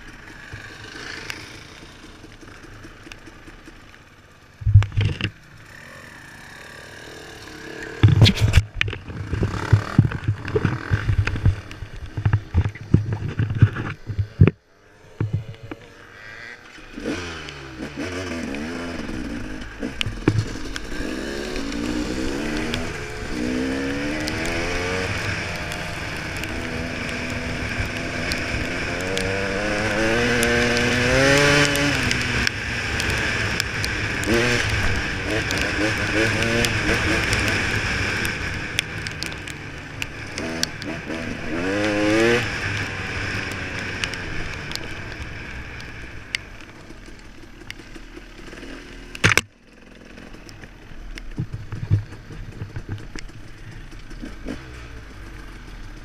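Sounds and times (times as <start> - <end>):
motorcycle engine accelerating: 0.0 - 56.0.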